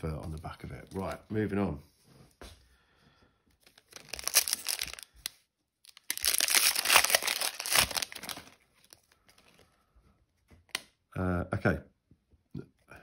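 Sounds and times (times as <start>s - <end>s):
plastic wrapper tearing and crinkling: 3.6s - 9.6s.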